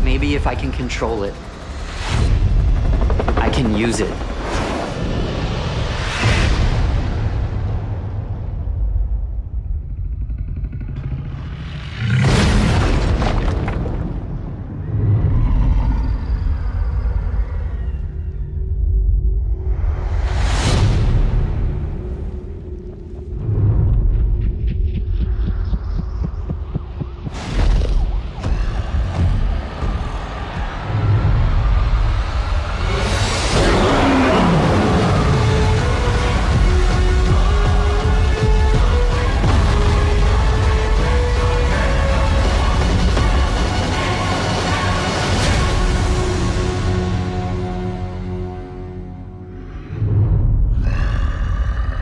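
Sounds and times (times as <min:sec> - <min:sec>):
heartbeat-like throbbing pulse: 0:00.0 - 0:12.4, 0:18.5 - 0:33.6, 0:34.7 - 0:48.1
deep rumbling drone: 0:04.3 - 0:52.0
deep monster growl: 0:08.6 - 0:13.7, 0:14.8 - 0:18.2, 0:27.3 - 0:45.1, 0:49.3 - 0:52.0.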